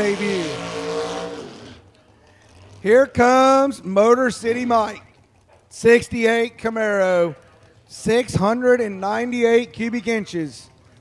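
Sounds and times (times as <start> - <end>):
race commentator speaking: 0.0 - 0.8, 2.7 - 5.0, 5.7 - 10.8.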